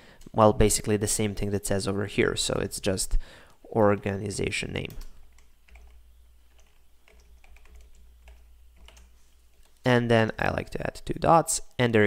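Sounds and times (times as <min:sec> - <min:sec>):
steady low hum: 0:00.2 - 0:11.1.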